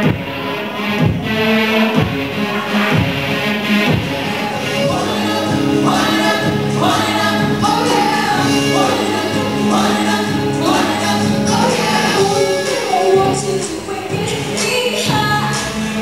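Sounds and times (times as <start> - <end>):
backing voices singing: 0.0 - 16.0
live pop band with guitars: 0.0 - 16.0
woman singing lead vocals: 1.0 - 16.0
held bass notes: 2.0 - 16.0.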